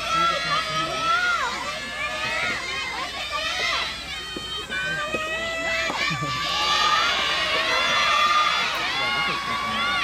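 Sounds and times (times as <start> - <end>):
girls shouting and calling: 0.0 - 10.0.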